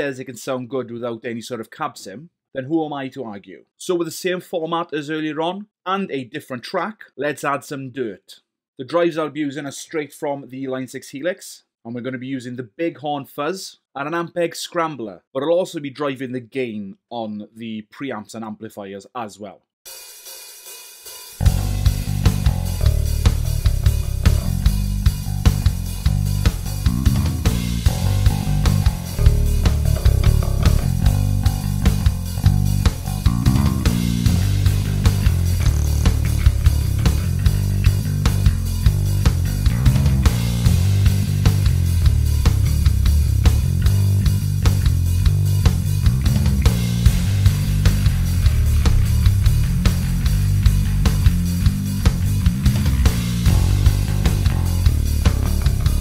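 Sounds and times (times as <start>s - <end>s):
drum backing track: 19.9s - 56.0s
overdriven electric bass riff: 21.4s - 56.0s.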